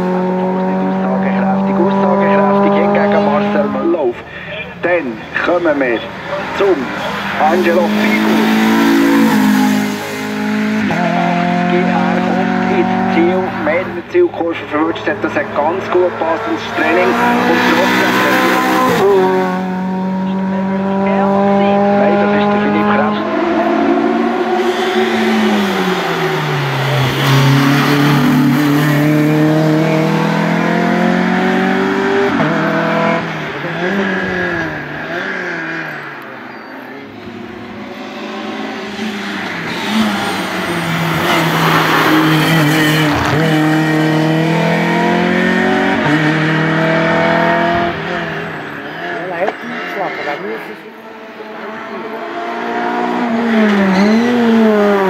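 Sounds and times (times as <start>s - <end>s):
racing car engines revving: 0.0s - 55.0s.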